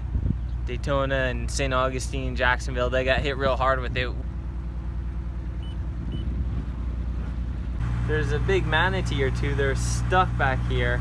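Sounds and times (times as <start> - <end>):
boat engine droning: 4.4 - 11.0.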